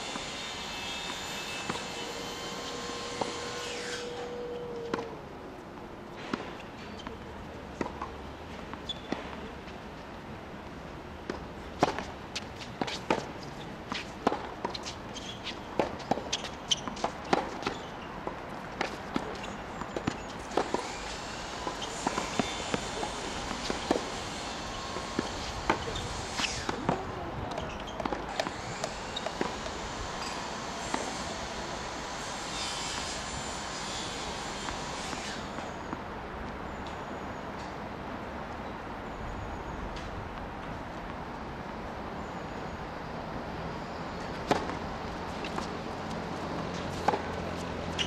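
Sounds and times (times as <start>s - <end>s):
tennis ball bouncing: 7.8s - 9.4s, 11.2s - 13.3s, 13.9s - 24.2s, 25.0s - 29.8s, 44.3s - 48.0s
shoe scuffs on court: 11.3s - 17.9s, 18.8s - 27.0s, 32.4s - 35.9s, 44.4s - 48.0s
tennis racket striking ball: 20.0s - 24.3s, 44.4s - 48.0s.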